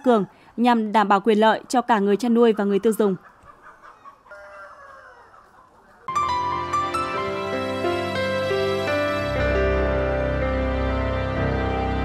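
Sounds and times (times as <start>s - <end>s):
chickens clucking: 2.2s - 6.1s
rooster crowing: 3.8s - 6.1s.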